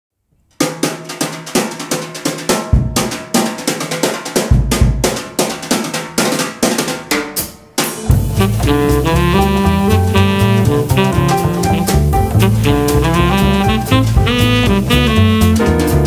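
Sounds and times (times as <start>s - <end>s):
jazz drum kit solo: 0.6s - 16.0s
heavy bass drum hits: 8.1s - 16.0s.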